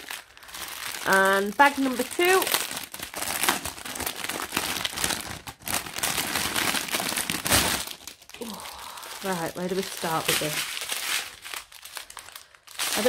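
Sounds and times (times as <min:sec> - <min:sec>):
plastic bag crinkling and rustling: 0:00.0 - 0:13.0.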